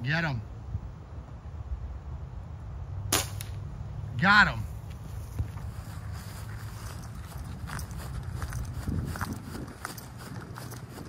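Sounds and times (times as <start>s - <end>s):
air rifle shot crack: 3.1s - 3.6s.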